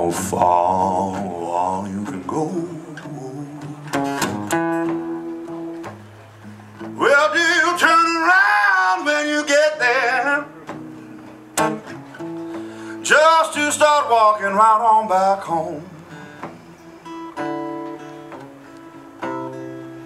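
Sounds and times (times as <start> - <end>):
man singing: 0.0 - 4.4, 6.9 - 10.8, 12.8 - 16.2
acoustic guitar blues: 0.0 - 20.0.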